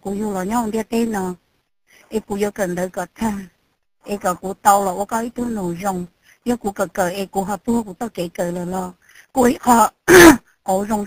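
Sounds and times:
person speaking: 0:00.0 - 0:01.4, 0:02.1 - 0:11.0
loud vocal outburst: 0:10.1 - 0:10.4.

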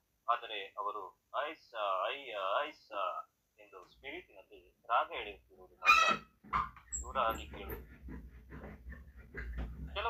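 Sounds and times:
man reading aloud: 0:00.2 - 0:05.9, 0:07.0 - 0:07.8.

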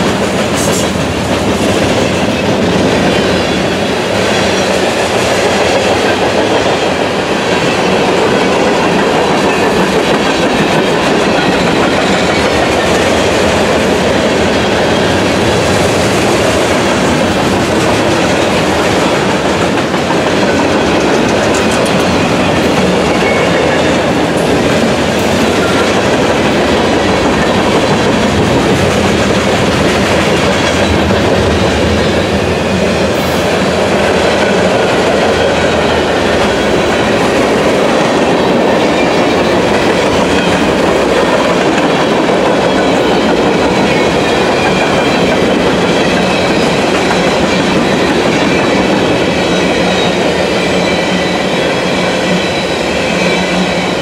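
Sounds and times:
freight train wheels rumbling: 0:00.0 - 0:54.0.

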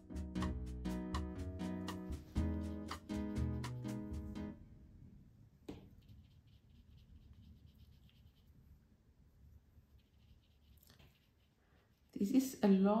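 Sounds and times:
plucked background music: 0:00.0 - 0:04.6
paintbrush scrubbing on paper: 0:05.9 - 0:08.8, 0:09.5 - 0:12.8.

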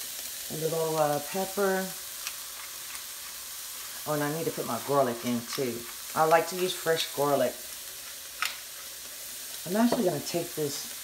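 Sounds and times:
vegetables sizzling in a skillet: 0:00.0 - 0:11.0.

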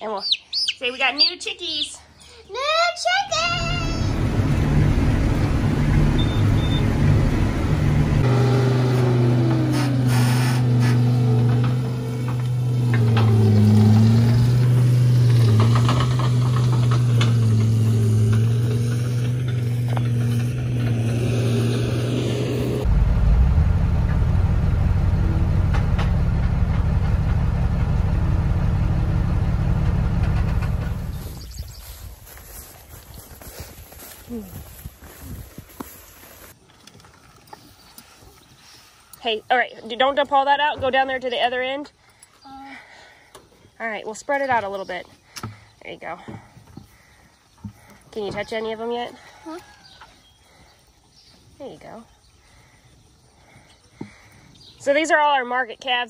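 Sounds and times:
tractor engine running: 0:03.3 - 0:36.6
low rushing noise: 0:20.6 - 0:31.3.

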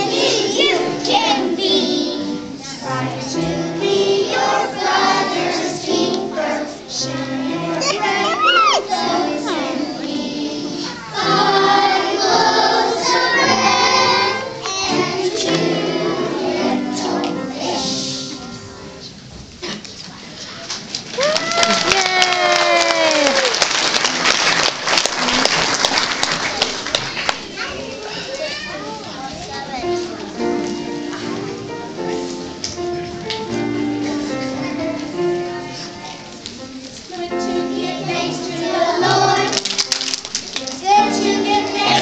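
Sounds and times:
children singing together: 0:00.0 - 0:19.0, 0:32.8 - 0:36.4, 0:37.0 - 0:39.8, 0:40.7 - 0:42.0
children chattering and calling out: 0:06.8 - 0:15.1, 0:27.4 - 0:32.6, 0:33.5 - 0:39.5
applause: 0:20.8 - 0:27.6, 0:39.5 - 0:40.8.

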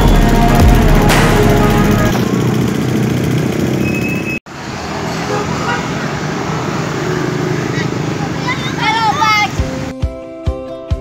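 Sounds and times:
minibus engine running: 0:00.0 - 0:09.9
street traffic: 0:00.0 - 0:10.0
voices: 0:07.3 - 0:09.7.

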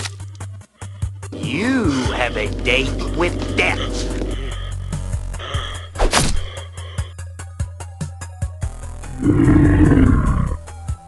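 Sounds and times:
background music with a beat: 0:01.0 - 0:06.0, 0:06.6 - 0:09.0
monster roar: 0:09.1 - 0:10.7.

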